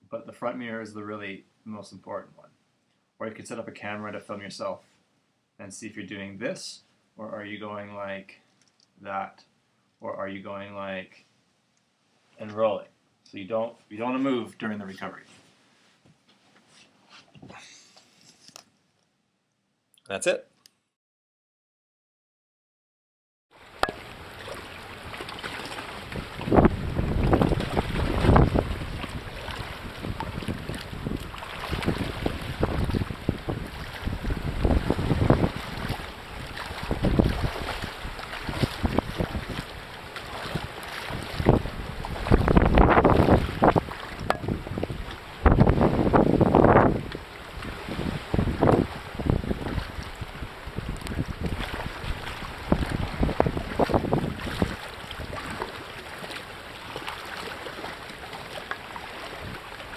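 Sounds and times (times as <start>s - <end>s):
sea water washing: 23.6s - 59.9s
wind buffeting microphone: 25.9s - 55.6s.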